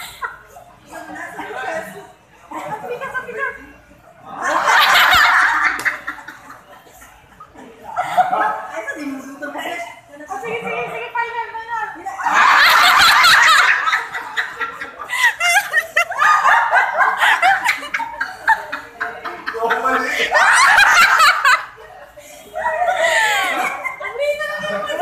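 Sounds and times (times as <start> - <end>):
group of people laughing: 0.0 - 10.9, 12.1 - 25.0
people talking: 0.0 - 25.0.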